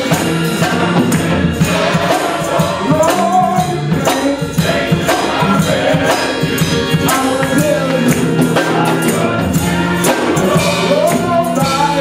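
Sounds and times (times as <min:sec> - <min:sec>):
gospel choir singing: 0:00.0 - 0:12.0
keyboard accompaniment: 0:00.0 - 0:12.0
hand-clapping on a beat: 0:01.0 - 0:01.4, 0:07.0 - 0:09.2.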